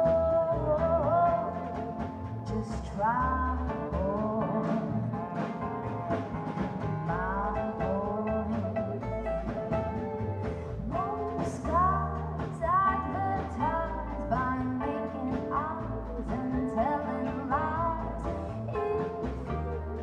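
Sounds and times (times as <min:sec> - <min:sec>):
acoustic guitar: 0:00.0 - 0:20.0
drums: 0:00.0 - 0:20.0
live band playing: 0:00.0 - 0:20.0
sliding lead melody: 0:00.0 - 0:20.0
upright double bass: 0:00.0 - 0:20.0.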